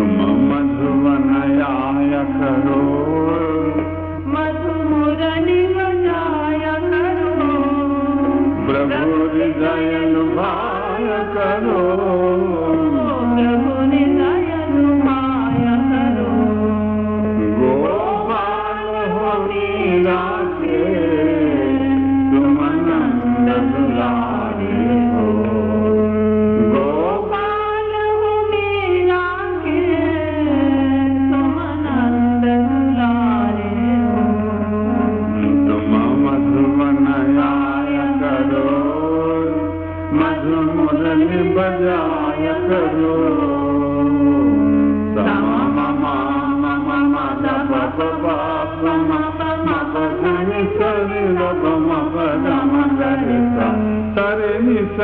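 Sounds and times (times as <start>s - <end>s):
person singing devotional song: 0.0s - 55.0s
steady held drone: 0.0s - 55.0s.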